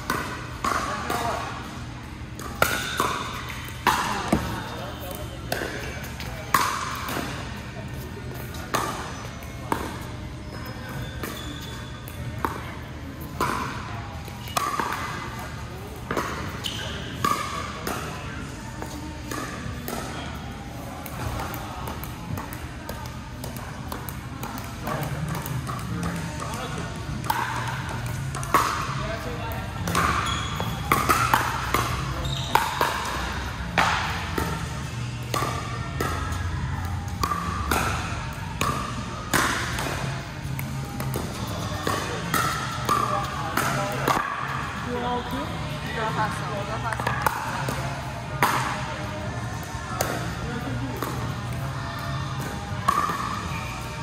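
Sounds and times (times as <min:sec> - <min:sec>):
pickleball paddle pops: 0:37.1 - 0:38.0, 0:40.6 - 0:44.4.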